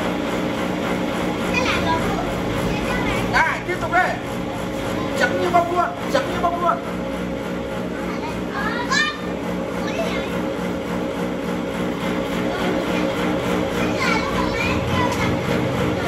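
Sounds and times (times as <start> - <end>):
cotton candy machine humming: 0.0 - 16.0
children calling out: 12.9 - 15.7.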